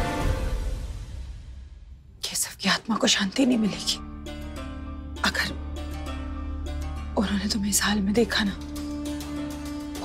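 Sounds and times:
dramatic background score: 0:00.0 - 0:10.0.

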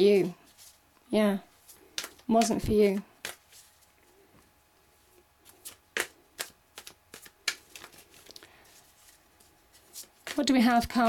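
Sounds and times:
cards being shuffled: 0:01.6 - 0:03.9, 0:05.1 - 0:11.0.

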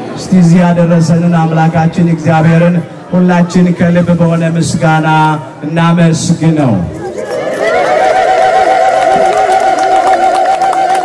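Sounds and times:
women ululating: 0:07.0 - 0:11.0.

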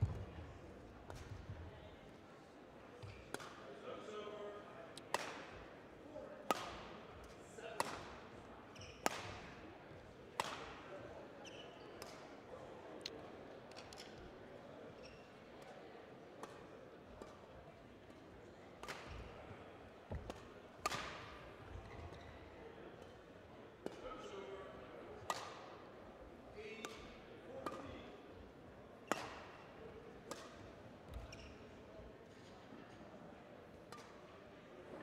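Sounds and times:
murmur of voices: 0:00.0 - 0:35.0.

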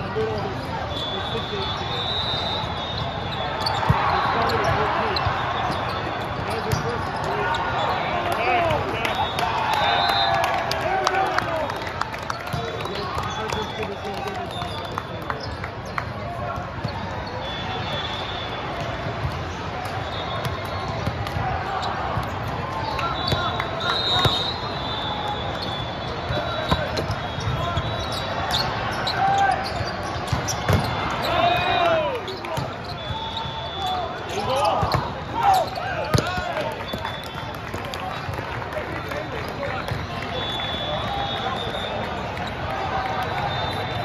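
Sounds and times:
spectators chattering: 0:00.0 - 0:44.0
players calling out: 0:00.1 - 0:44.0
loud shouts: 0:03.6 - 0:11.8, 0:26.2 - 0:29.8, 0:30.6 - 0:37.2
volleyballs thudding: 0:30.2 - 0:31.9, 0:36.0 - 0:37.0.

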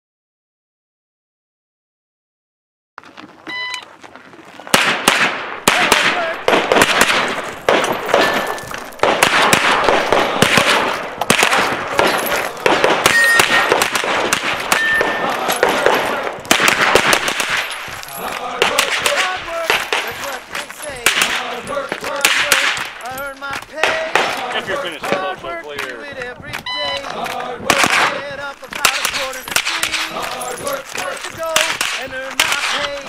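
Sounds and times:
shot timer beep: 0:03.5 - 0:03.9, 0:13.1 - 0:13.7, 0:14.7 - 0:15.3, 0:26.6 - 0:27.1
carbine firing rapid shots: 0:04.7 - 0:25.2, 0:27.2 - 0:33.0.

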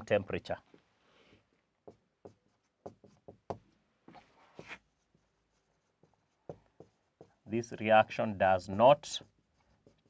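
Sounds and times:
marker writing on whiteboard: 0:00.6 - 0:07.6, 0:08.9 - 0:10.0.

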